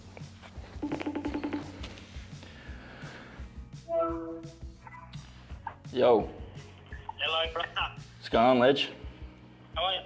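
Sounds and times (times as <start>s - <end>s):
background music: 0.0s - 10.0s
electronic chime: 3.9s - 4.6s.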